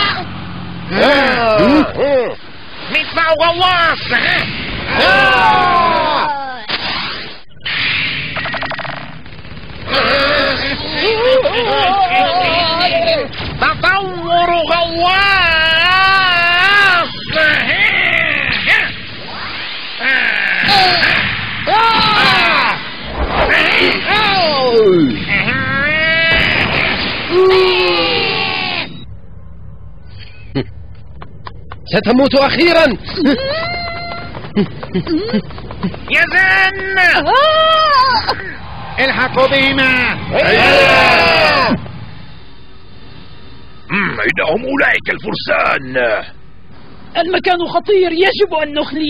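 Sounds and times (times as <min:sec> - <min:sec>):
blast: 0:02.7 - 0:11.8, 0:16.7 - 0:29.3, 0:37.4 - 0:42.8
fast rattle of shots: 0:06.7 - 0:11.2
cannon fire: 0:09.2 - 0:11.4, 0:26.0 - 0:27.8
low rumble: 0:20.8 - 0:44.0.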